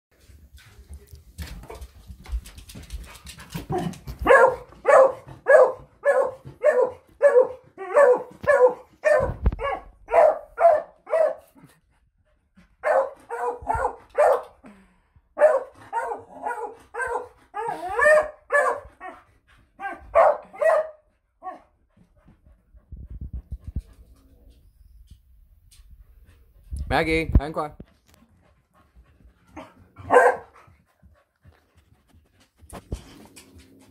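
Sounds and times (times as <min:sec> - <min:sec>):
dog barking: 0:04.2 - 0:11.6, 0:12.8 - 0:14.6, 0:15.4 - 0:18.9, 0:19.8 - 0:21.6, 0:30.0 - 0:30.6.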